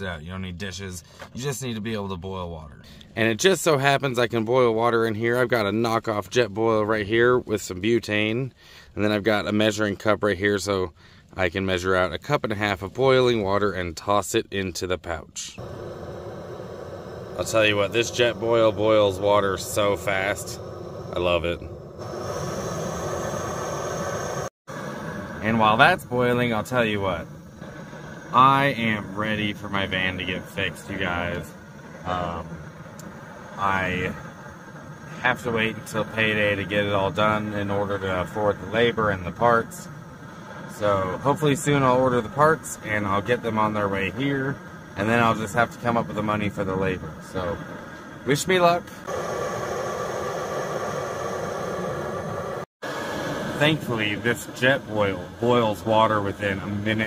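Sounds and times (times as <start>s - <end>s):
quiet steady background: 0.0s - 57.0s
gas stove hissing: 15.6s - 57.0s.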